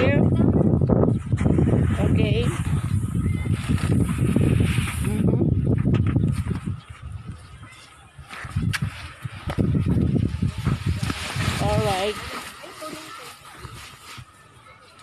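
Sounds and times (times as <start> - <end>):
people talking outdoors: 0.0 - 15.0.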